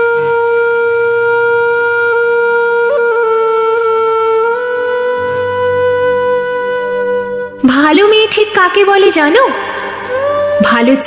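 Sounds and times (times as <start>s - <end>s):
wind instrument holding long note: 0.0s - 7.8s, 9.4s - 11.0s.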